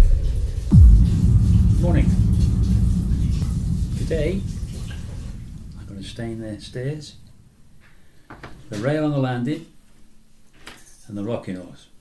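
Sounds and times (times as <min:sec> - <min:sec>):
deep booming hits: 0:00.0 - 0:07.8
low rumble: 0:00.0 - 0:07.8.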